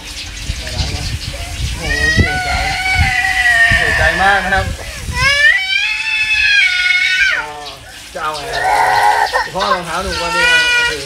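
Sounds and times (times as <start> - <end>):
water running from hose: 0.0 - 11.0
toddler high-pitched vocalizing: 1.4 - 7.5, 8.4 - 11.0.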